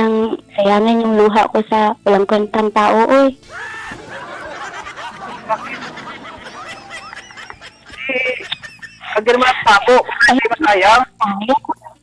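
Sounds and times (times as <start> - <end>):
woman laughing: 3.4 - 11.0.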